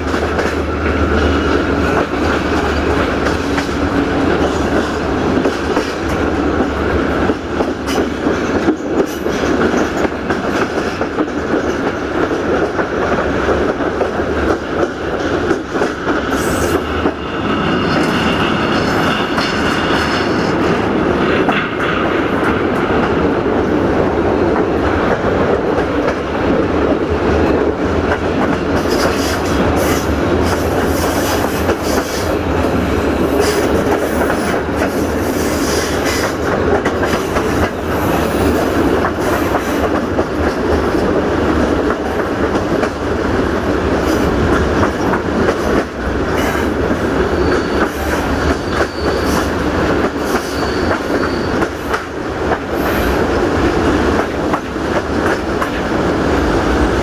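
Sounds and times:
train wheels rumbling on rails: 0:00.0 - 0:57.0
high wheel squeal: 0:47.3 - 0:49.6, 0:50.2 - 0:51.8.

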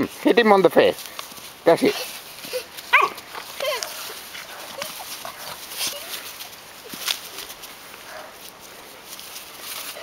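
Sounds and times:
puppy yelping and whining: 0:02.5 - 0:04.2.

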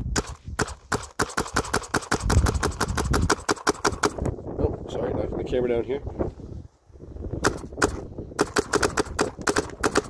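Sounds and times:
paintball marker firing: 0:00.0 - 0:04.3, 0:07.4 - 0:10.0.

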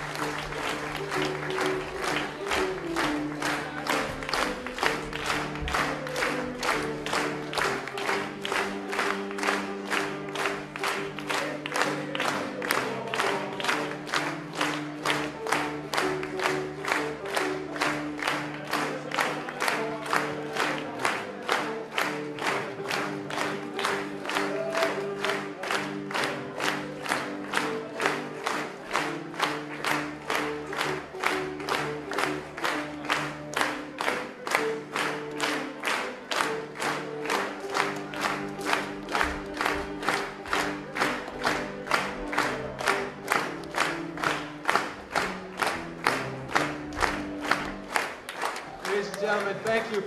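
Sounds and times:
audience clapping in rhythm: 0:00.0 - 0:50.0.

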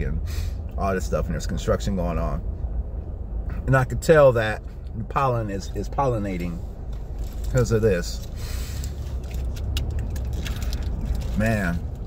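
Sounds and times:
car cabin road and engine rumble: 0:00.0 - 0:12.0
light clicks and rattles: 0:06.3 - 0:12.0.

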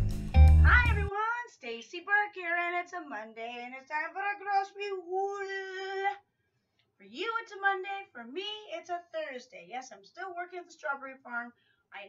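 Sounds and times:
woman singing high phrases: 0:00.6 - 0:06.2, 0:07.0 - 0:12.0
woman speaking: 0:00.6 - 0:06.2, 0:07.0 - 0:12.0.

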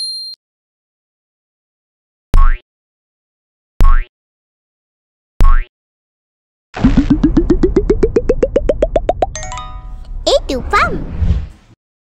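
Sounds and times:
rising blooping tones: 0:06.8 - 0:09.4
low rumble: 0:06.8 - 0:11.8.

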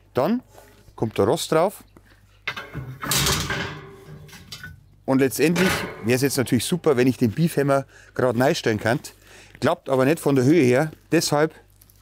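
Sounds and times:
metal grill grate clattering: 0:02.5 - 0:06.4.

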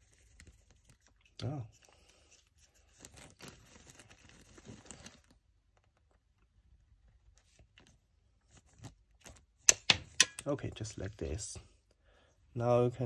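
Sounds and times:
plastic parts rustling and scraping: 0:00.0 - 0:06.2.

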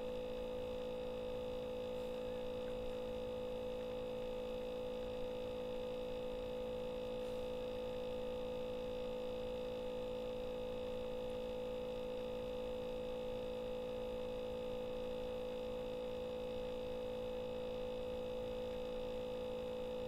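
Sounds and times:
steady multi-tone hum: 0:00.0 - 0:20.0.

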